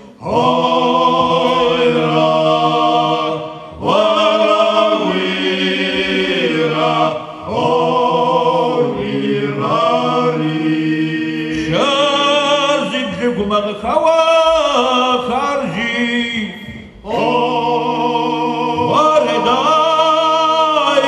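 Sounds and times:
men singing together: 0.0 - 21.0.

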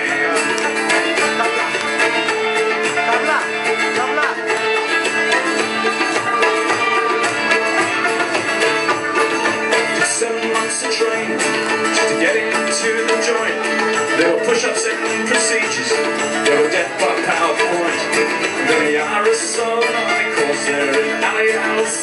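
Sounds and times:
band playing folk music: 0.0 - 22.0.

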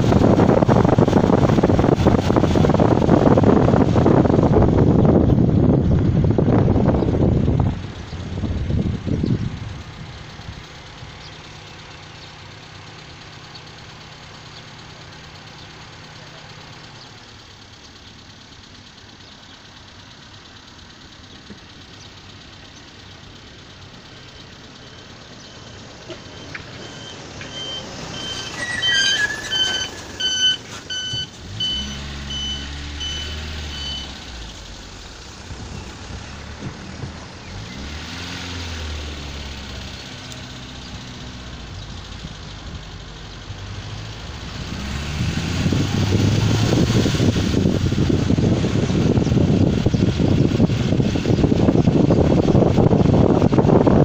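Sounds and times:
car engine and road hum: 0.0 - 54.0
high electronic beeps: 24.4 - 34.2.

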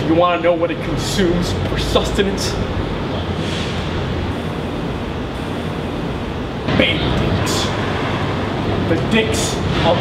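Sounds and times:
low city rumble: 0.0 - 10.0.

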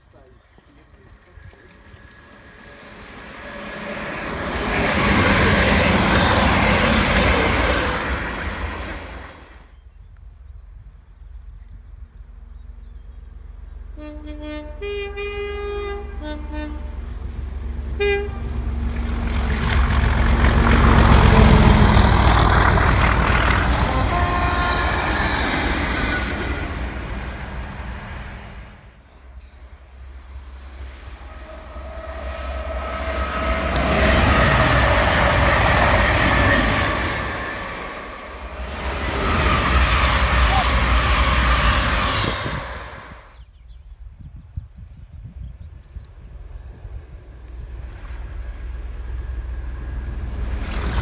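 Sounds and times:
train engine and wheel noise: 0.0 - 51.0
locomotive horn blasts: 13.9 - 17.2, 18.0 - 18.7, 23.5 - 25.5, 31.3 - 38.4.

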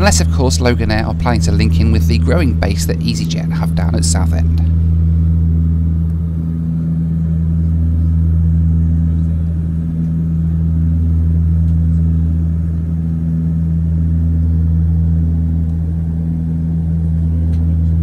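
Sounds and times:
pulsing tone: 0.0 - 18.0
turboprop cabin drone: 0.0 - 18.0.

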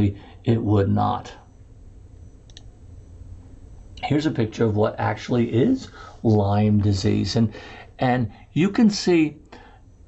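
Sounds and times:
low steady hum: 0.0 - 10.0
computer mouse clicks: 2.4 - 2.7.

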